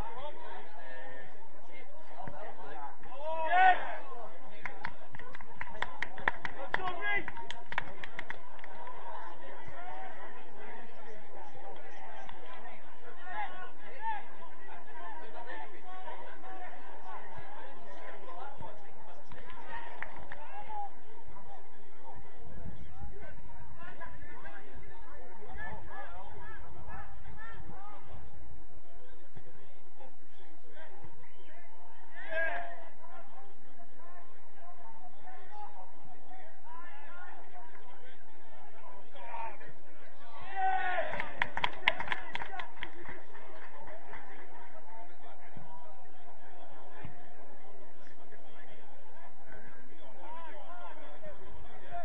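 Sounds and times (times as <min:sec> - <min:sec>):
people talking and calling out: 0:00.0 - 0:52.0
sharp hand claps: 0:04.6 - 0:08.8, 0:41.1 - 0:43.7.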